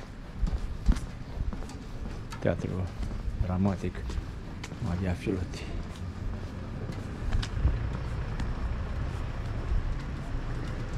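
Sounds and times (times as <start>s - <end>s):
low street rumble: 0.0s - 10.9s.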